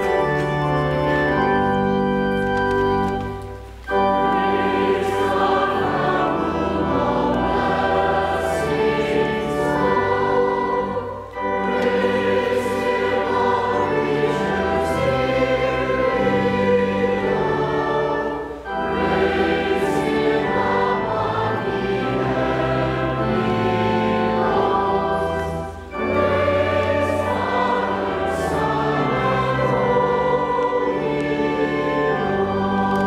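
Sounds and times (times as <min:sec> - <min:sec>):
congregation singing a hymn: 0:00.0 - 0:33.0
organ accompaniment: 0:00.0 - 0:33.0.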